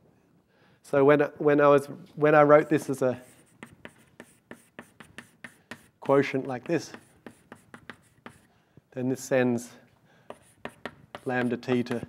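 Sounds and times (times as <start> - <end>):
chalk tapping and scratching: 2.8 - 8.5, 10.2 - 12.0.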